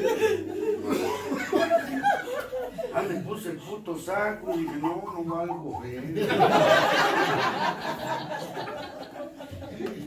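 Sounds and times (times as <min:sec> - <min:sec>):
people laughing: 0:00.0 - 0:10.0
speech: 0:02.9 - 0:06.4.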